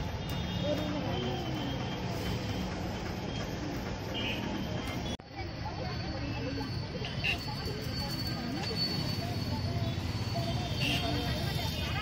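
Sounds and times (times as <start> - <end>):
street traffic rumble: 0.0 - 12.0
faint voices: 0.5 - 12.0.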